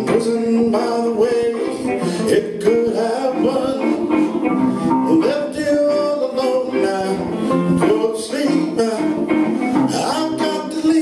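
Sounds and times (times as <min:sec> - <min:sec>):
bass guitar: 0:00.0 - 0:11.0
electric guitars: 0:00.0 - 0:11.0.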